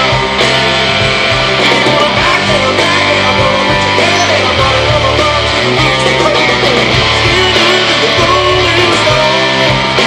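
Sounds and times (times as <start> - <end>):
bass guitar: 0.0 - 10.0
electric guitars: 0.0 - 10.0
steady drum beat: 0.0 - 10.0.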